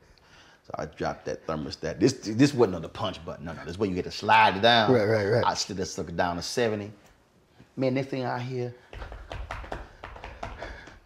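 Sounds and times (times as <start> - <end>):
hands tapping a surface: 8.9 - 11.0.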